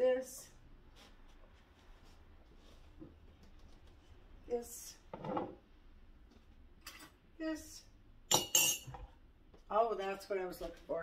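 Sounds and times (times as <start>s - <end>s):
dishes clinking: 8.3s - 9.1s.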